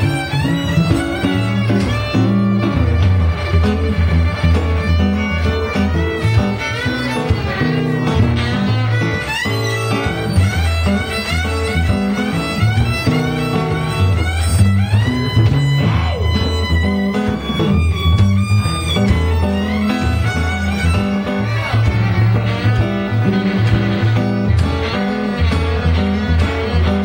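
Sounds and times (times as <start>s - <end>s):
acoustic guitar: 0.0s - 27.0s
harmonica bending notes: 0.0s - 27.0s.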